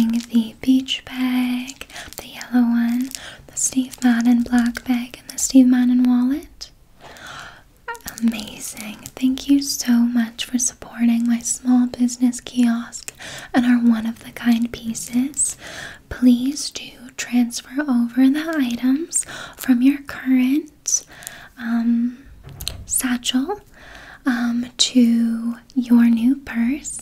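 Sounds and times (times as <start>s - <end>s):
woman whispering softly: 0.0s - 5.5s.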